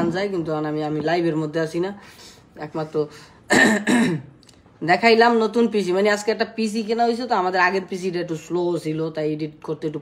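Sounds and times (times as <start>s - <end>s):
person clearing throat: 3.5s - 4.4s.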